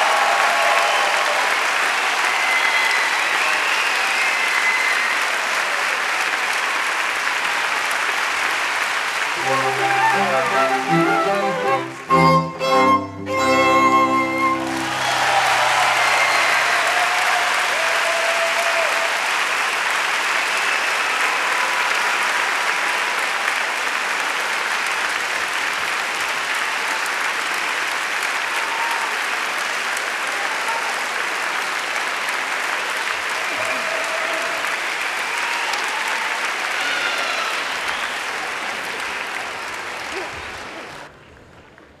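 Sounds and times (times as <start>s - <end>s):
audience applauding: 0.0s - 42.0s.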